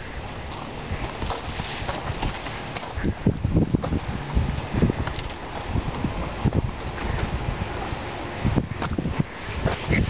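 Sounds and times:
footsteps on gravel: 0.2s - 8.1s.

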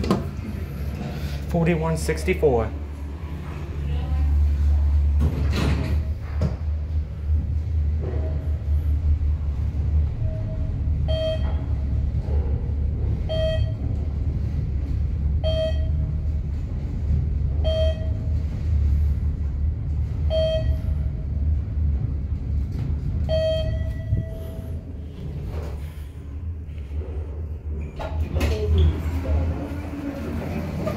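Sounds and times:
elevator low rumble: 0.0s - 30.9s
short electronic beep: 20.3s - 20.9s, 23.3s - 24.7s.

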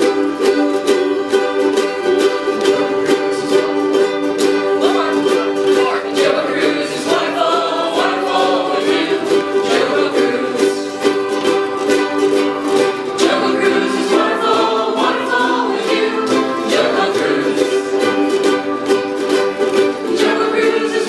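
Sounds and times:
ukuleles and guitars strumming: 0.0s - 21.0s
group of voices singing: 2.3s - 21.0s.

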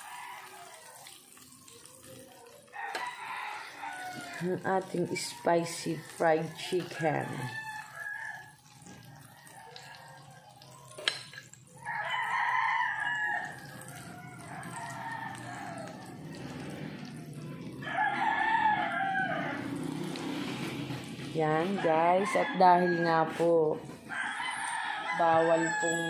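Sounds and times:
rooster crowing: 0.0s - 1.2s, 2.7s - 10.9s, 11.8s - 20.4s, 21.6s - 26.0s
chicken sizzling in oil: 0.0s - 26.0s.

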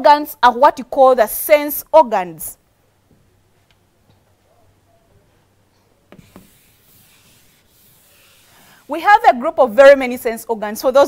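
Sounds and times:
chalk tapping on chalkboard: 6.1s - 8.6s
chalk rubbing on chalkboard: 6.1s - 9.3s.

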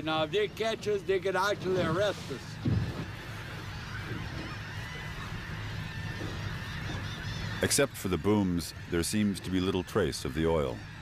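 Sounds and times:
boat engine droning: 0.0s - 11.0s
wind and water hiss: 0.0s - 11.0s.

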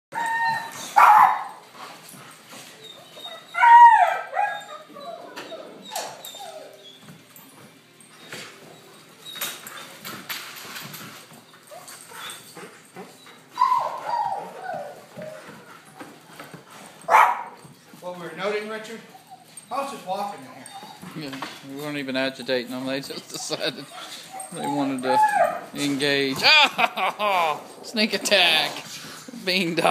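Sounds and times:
puppies barking and yipping: 0.2s - 17.8s, 18.4s - 21.2s, 22.8s - 27.1s.

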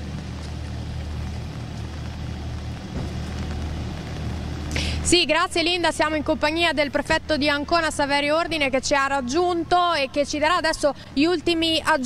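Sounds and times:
rain falling: 0.0s - 6.3s
low engine hum: 0.0s - 12.0s.

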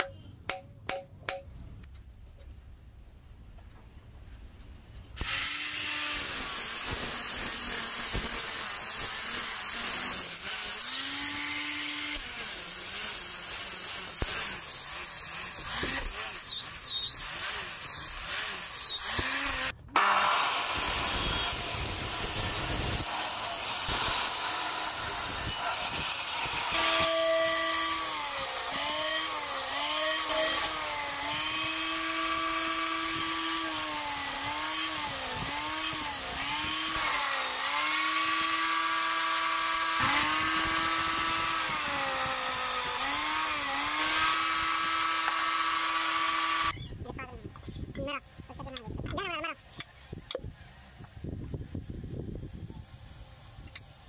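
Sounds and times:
angle grinder sanding bamboo: 5.2s - 46.8s
cut-off saw cutting bamboo: 5.2s - 46.8s
power tool running under load: 5.2s - 46.8s.

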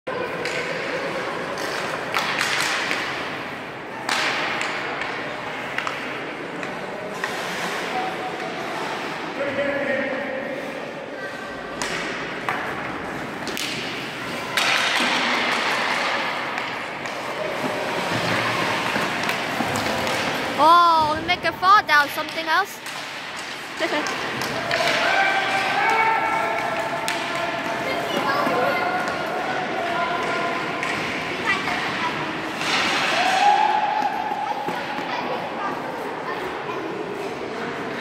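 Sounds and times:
hockey sticks and pucks knocking: 0.3s - 8.7s, 11.6s - 35.4s
skates hissing on ice: 7.1s - 9.2s.

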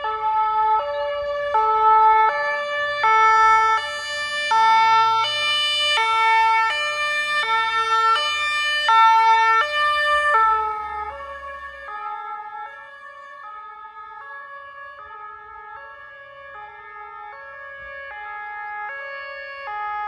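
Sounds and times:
two-tone emergency siren: 0.0s - 20.0s.

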